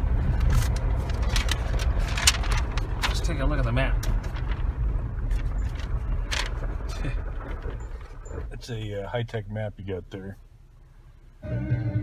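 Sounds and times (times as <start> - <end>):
car driving on gravel rumble: 0.0 - 10.6.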